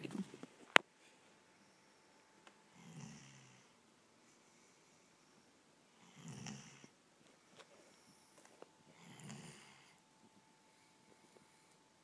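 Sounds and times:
dog snoring softly: 0:02.7 - 0:05.1, 0:06.0 - 0:07.0, 0:08.0 - 0:10.0.

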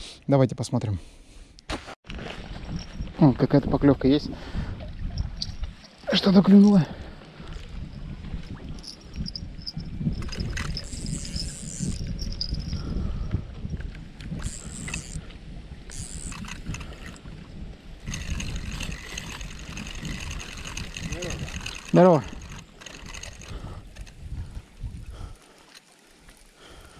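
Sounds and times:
wind buffeting microphone: 0:02.2 - 0:25.4
fishing reel whirring: 0:08.7 - 0:13.0, 0:14.2 - 0:15.3, 0:15.9 - 0:17.4, 0:18.0 - 0:24.3.

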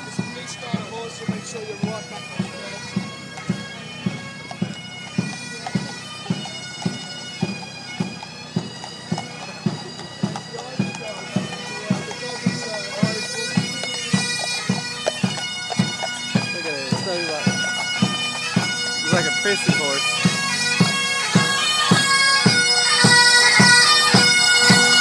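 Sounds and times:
bagpipes playing a tune: 0:00.0 - 0:25.0.

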